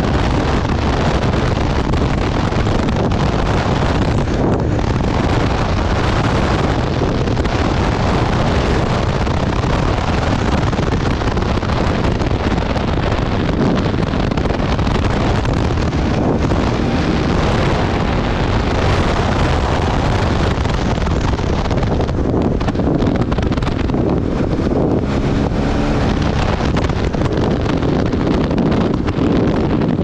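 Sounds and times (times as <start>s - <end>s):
motorcycle engine running: 0.0s - 30.0s
wind noise on microphone: 0.0s - 30.0s.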